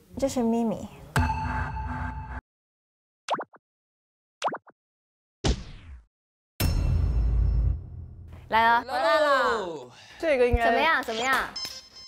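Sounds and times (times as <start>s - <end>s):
cartoon blip sound effect: 3.3s - 3.6s.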